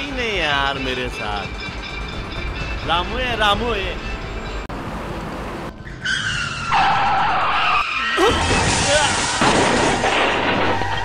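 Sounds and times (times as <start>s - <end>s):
tyres screeching in a skid: 5.8s - 11.0s.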